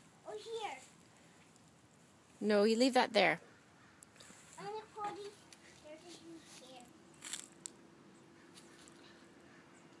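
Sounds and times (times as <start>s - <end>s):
weeds rustling crunch: 6.4s - 7.6s.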